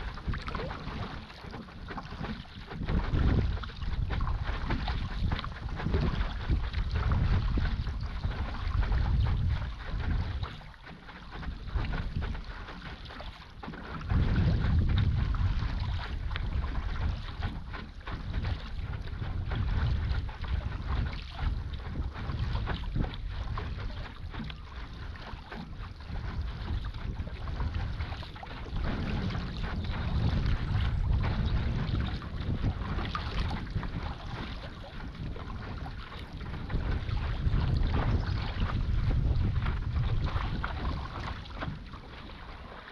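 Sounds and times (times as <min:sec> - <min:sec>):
water splashing and bubbling: 0:00.0 - 0:42.9
wind buffeting microphone: 0:00.0 - 0:42.9.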